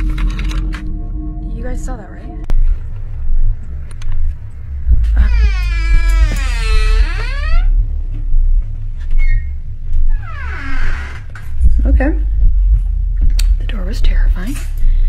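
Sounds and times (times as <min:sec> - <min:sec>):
steady low rumble: 0:00.0 - 0:15.0
door creaking on hinges: 0:05.1 - 0:07.8, 0:09.0 - 0:11.5.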